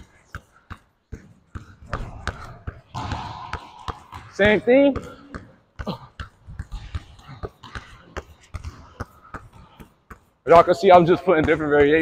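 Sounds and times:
basketball bouncing on court floor: 0.0 - 12.0.

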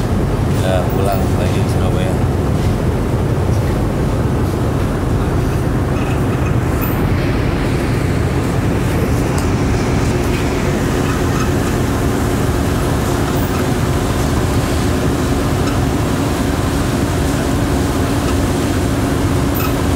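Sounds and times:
ferry engines droning: 0.0 - 19.9.

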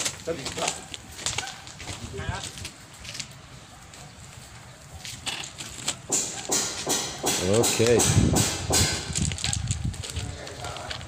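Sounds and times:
heavy thump: 6.1 - 9.3.

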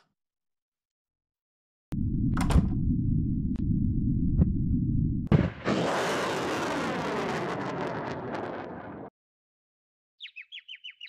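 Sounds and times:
low rumble: 1.9 - 9.1.

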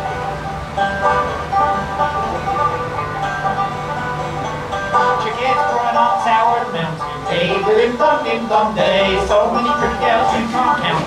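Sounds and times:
banjo: 0.0 - 11.0
fiddle: 0.0 - 11.0.

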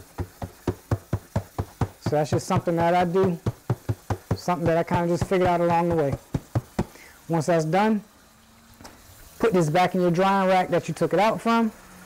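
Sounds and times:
cloth patting wet screen mesh: 0.0 - 7.0.

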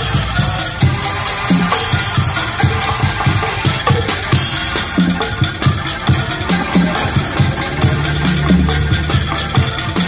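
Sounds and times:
street band drumming on buckets: 0.0 - 10.0
deep bass line: 3.0 - 10.0.

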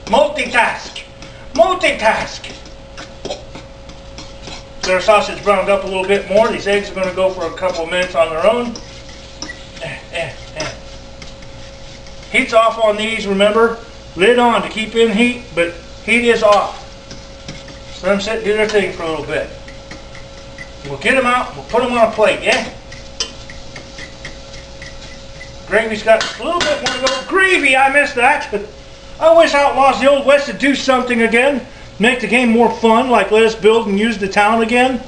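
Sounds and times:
utensil scraping a steel saucepan: 0.0 - 27.4
faint steady hum: 0.0 - 35.0.

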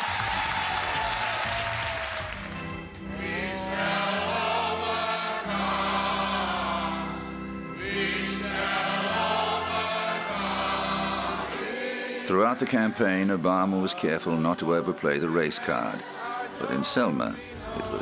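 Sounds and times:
congregation singing a hymn: 2.6 - 18.0.

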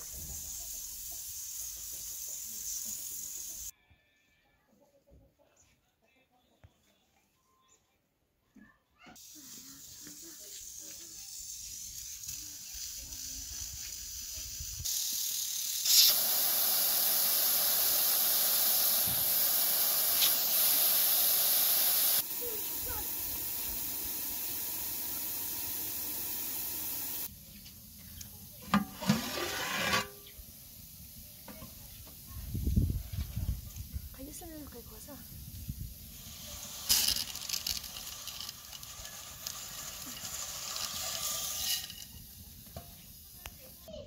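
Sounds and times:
water rushing from tap: 15.9 - 27.3.

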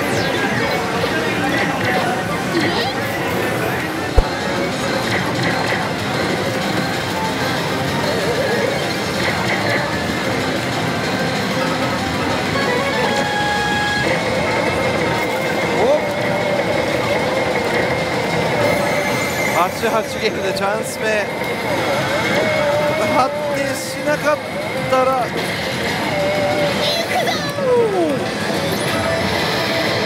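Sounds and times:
slot machines roar: 0.0 - 30.0.

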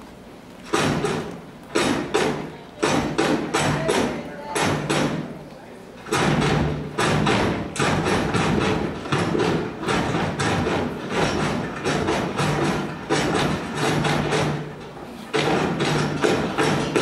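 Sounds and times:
sharp foot stomps: 0.6 - 5.3, 6.1 - 17.0.

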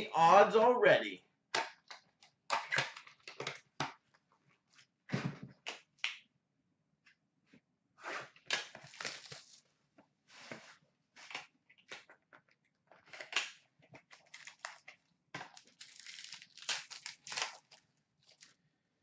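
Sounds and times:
wrapper tearing and crinkling: 8.6 - 9.6, 14.1 - 18.6.

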